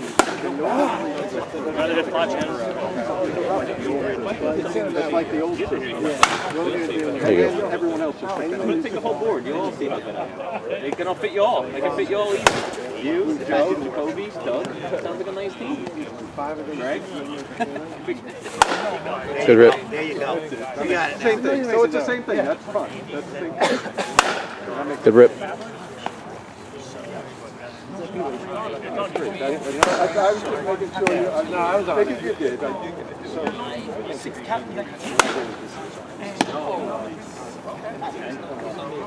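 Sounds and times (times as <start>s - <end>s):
bat cracking against ball: 0.0s - 0.6s, 6.1s - 6.6s, 12.4s - 12.8s, 18.5s - 19.0s, 24.0s - 24.7s, 29.8s - 30.1s, 35.0s - 35.6s
people talking: 0.0s - 39.0s
loud sharp crack: 0.1s - 0.5s, 6.2s - 6.6s, 12.4s - 12.8s, 18.5s - 19.0s, 24.1s - 24.6s, 35.1s - 35.6s.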